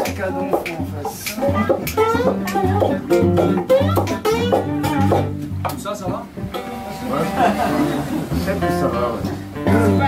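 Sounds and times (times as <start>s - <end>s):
guitars picked: 0.0s - 10.0s.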